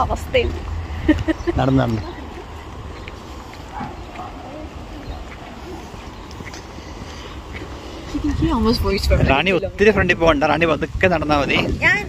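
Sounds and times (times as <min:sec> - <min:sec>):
faint voices: 0:00.0 - 0:10.5
wind rumble on microphone: 0:00.0 - 0:12.0.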